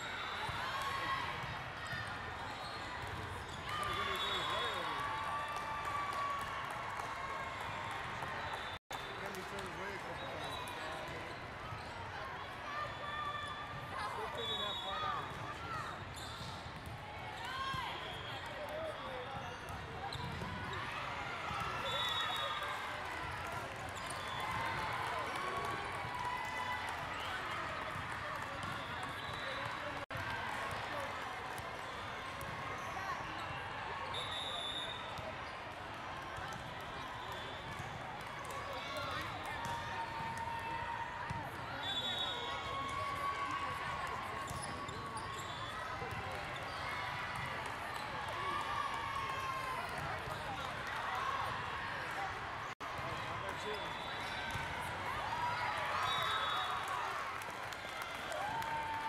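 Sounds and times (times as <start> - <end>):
referee whistle blasts: 3.8 - 4.9, 14.3 - 15.2, 21.8 - 22.7, 34.1 - 35.2, 41.8 - 42.7, 56.0 - 56.9.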